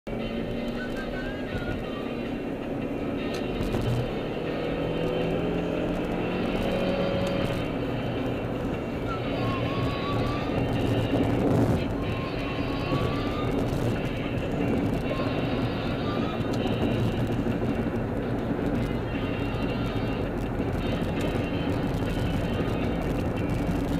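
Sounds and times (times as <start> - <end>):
car road and engine noise: 0.0 - 23.9
music playing: 0.1 - 23.9.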